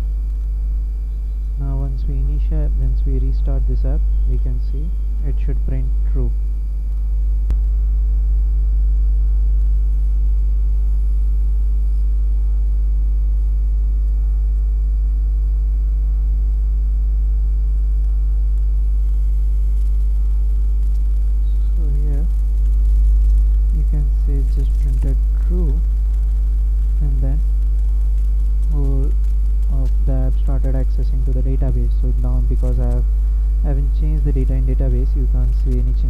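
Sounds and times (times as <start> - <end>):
low electrical hum: 0.0 - 36.0.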